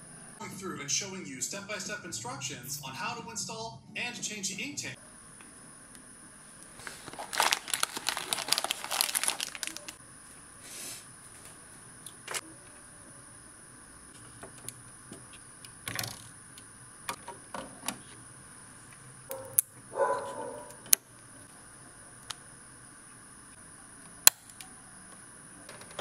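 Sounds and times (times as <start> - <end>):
packaging crinkling: 6.8 - 10.0
dog barking: 19.3 - 20.8.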